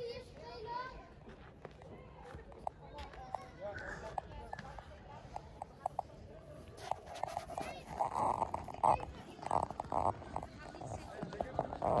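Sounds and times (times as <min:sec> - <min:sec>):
people talking: 0:01.9 - 0:12.0.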